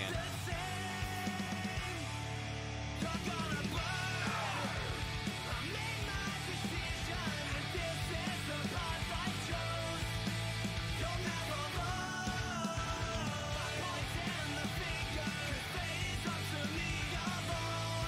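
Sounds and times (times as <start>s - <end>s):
man singing and shouting: 0.0s - 2.3s, 3.0s - 18.0s
punk rock band playing: 0.0s - 18.0s.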